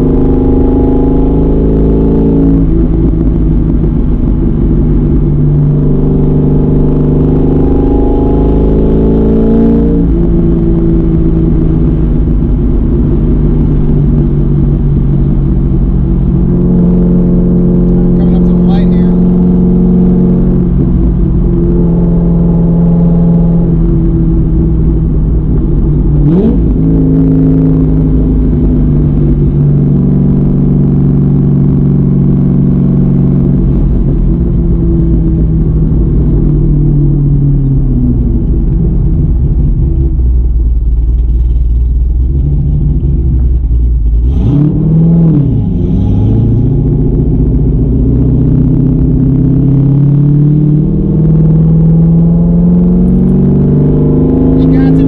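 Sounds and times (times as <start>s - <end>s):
car engine revving inside cabin: 0.0s - 55.0s.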